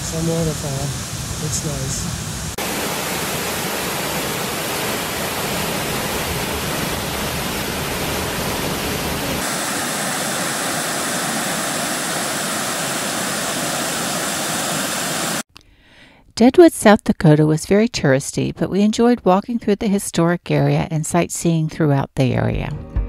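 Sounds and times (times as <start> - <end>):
creek water cascading: 0.0 - 15.4
waterfall rushing: 0.0 - 15.4.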